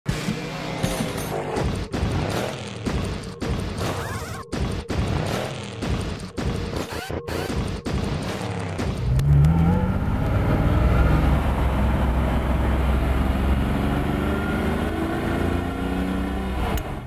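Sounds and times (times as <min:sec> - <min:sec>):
car engine accelerating: 0:08.8 - 0:17.0.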